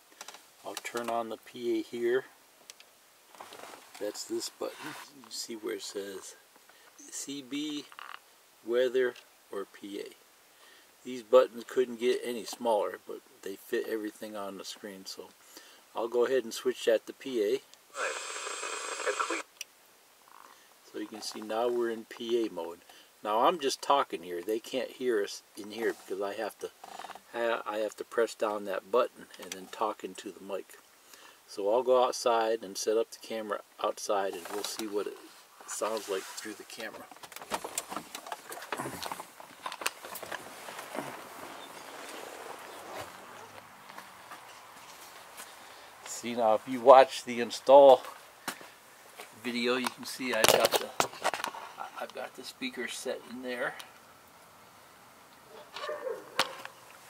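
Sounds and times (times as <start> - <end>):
steady hiss: 0.0 - 55.4
hissy radio broadcast voice: 18.0 - 19.5.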